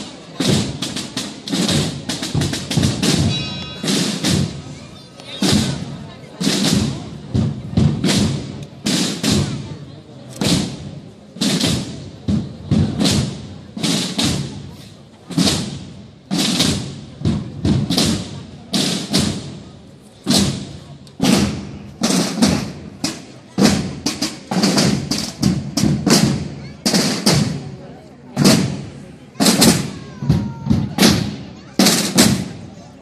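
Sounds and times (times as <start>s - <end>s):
snare drums marching cadence: 0.0s - 9.7s, 10.3s - 27.8s, 28.4s - 32.7s.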